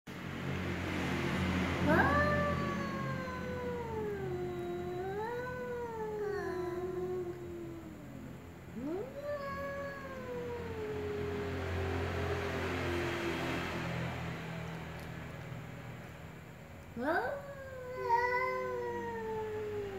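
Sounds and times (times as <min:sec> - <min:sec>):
cats yowling: 0:01.8 - 0:13.1, 0:16.9 - 0:19.9.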